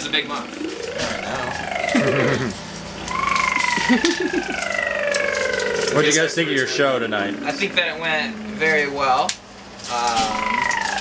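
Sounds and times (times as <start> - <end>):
person making high wavering whine: 0.0 - 9.2, 9.9 - 11.0
person chuckling: 1.0 - 2.7, 3.6 - 4.8
laughter: 3.7 - 4.6.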